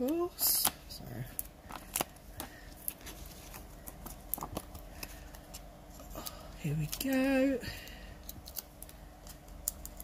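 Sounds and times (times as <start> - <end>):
card stock rustling: 1.4 - 7.5.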